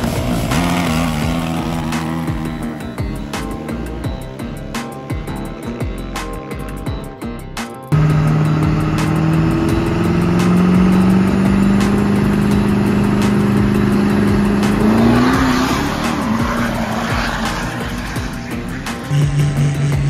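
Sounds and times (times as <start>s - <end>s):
diesel engine revving: 0.0s - 7.0s, 7.9s - 20.0s.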